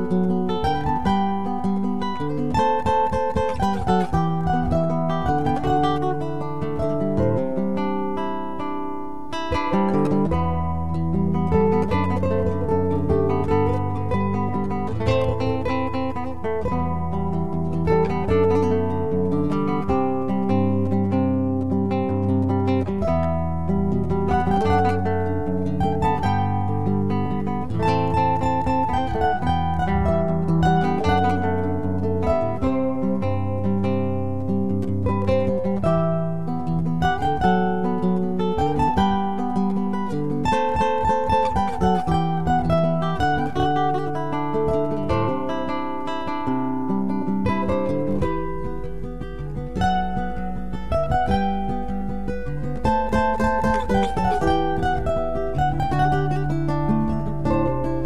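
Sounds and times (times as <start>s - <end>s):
acoustic guitars playing chords: 0.0s - 58.0s.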